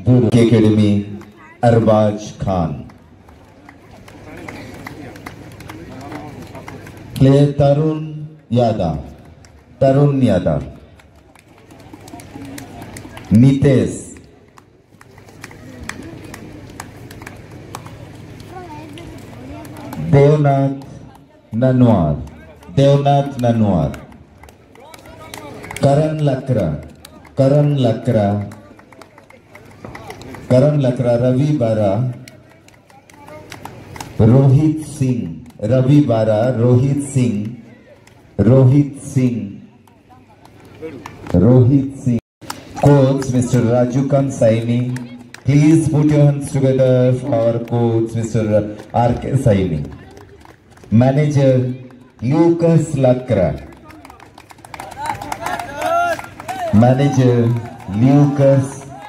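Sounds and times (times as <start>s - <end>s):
murmur of voices: 0.0s - 59.0s
light hand claps: 2.9s - 7.2s, 11.0s - 13.3s, 14.1s - 20.1s, 22.2s - 26.2s, 32.0s - 34.2s, 53.6s - 58.7s
announcer speaking: 56.7s - 59.0s.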